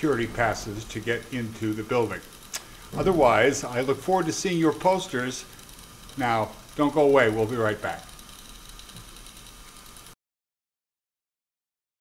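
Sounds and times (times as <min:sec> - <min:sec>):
room tone hiss: 0:00.0 - 0:10.2.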